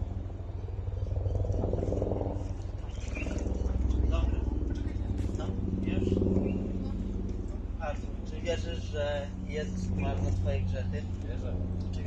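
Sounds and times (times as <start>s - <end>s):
low motor hum: 0.0s - 12.0s
faint indistinct voices: 2.1s - 12.0s.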